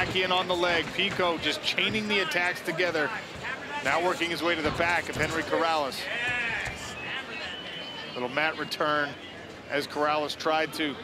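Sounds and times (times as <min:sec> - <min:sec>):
arena background noise: 0:00.0 - 0:11.0.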